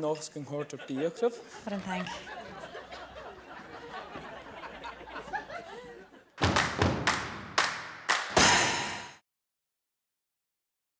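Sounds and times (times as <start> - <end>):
percussive strikes: 6.4 - 9.2.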